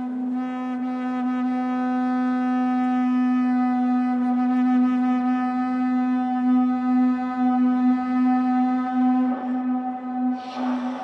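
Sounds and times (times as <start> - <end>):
ice horn low note: 9.2 - 11.0.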